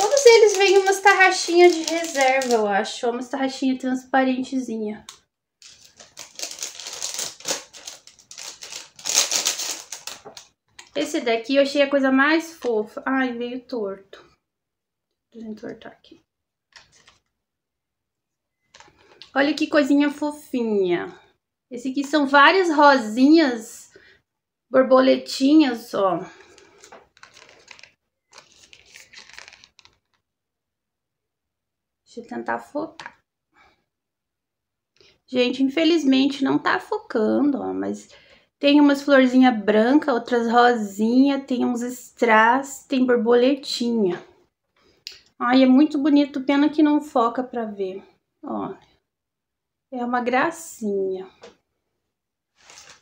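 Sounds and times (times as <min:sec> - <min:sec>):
packaging rustling and crinkling: 0:00.0 - 0:02.7, 0:05.6 - 0:11.0, 0:26.4 - 0:30.2, 0:52.6 - 0:53.0.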